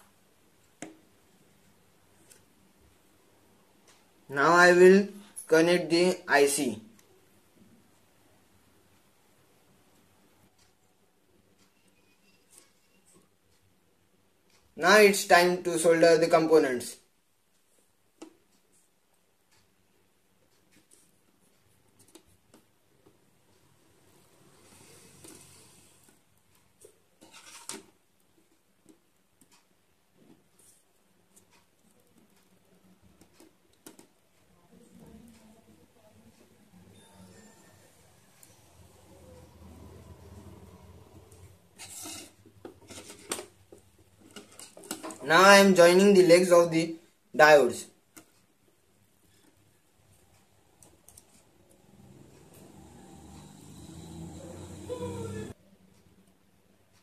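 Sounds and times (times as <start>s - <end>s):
soldering iron ticks and scrapes: 10.0s - 14.8s, 17.4s - 36.9s, 41.2s - 45.7s, 48.1s - 54.6s
circuit board scraping: 27.2s - 27.8s, 36.9s - 43.4s.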